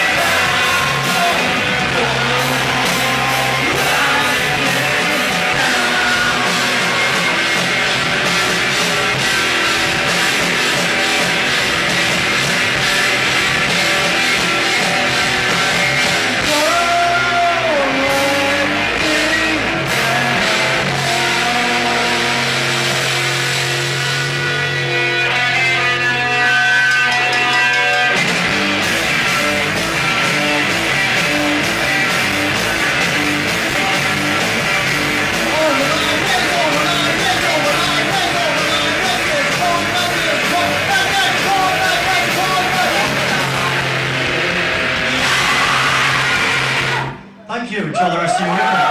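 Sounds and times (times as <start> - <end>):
distorted electric guitar chord: 0.0 - 47.3
live rock band playing loudly: 0.0 - 47.4.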